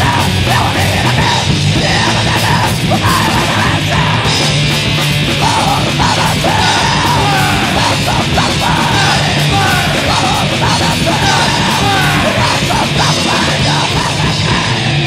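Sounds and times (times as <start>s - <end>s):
shouted vocals: 0.0s - 4.4s, 5.3s - 15.0s
punk band playing: 0.0s - 15.0s.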